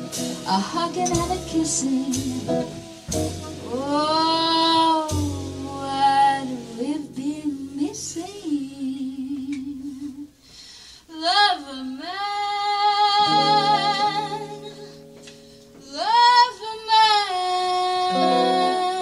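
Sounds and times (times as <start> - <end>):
woman singing with vibrato: 0.0 - 10.4, 11.0 - 14.9, 15.8 - 19.0
bass: 0.0 - 19.0.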